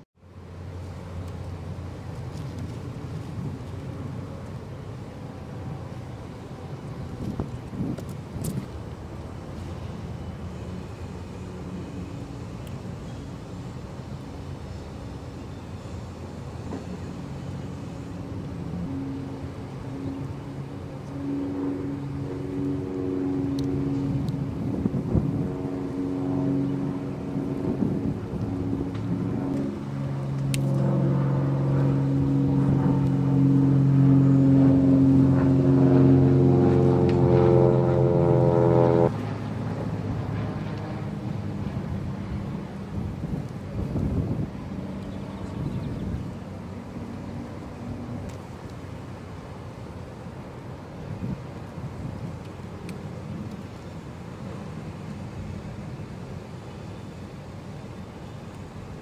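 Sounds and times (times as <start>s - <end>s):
outdoor background noise: 0.0s - 59.0s
motor vehicle engine running: 28.8s - 40.8s.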